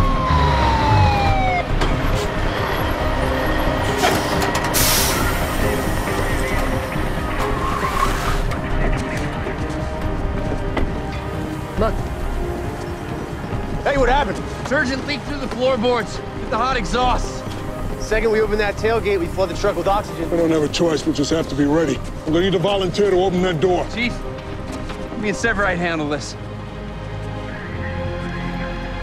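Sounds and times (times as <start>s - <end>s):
fire engine siren winding down: 0.0s - 8.5s
tense music: 0.0s - 29.0s
loud bursts of hiss: 4.0s - 6.4s.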